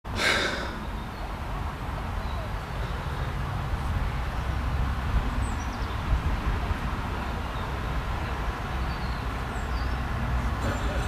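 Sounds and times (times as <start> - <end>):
breathy exhale: 0.1 - 1.0.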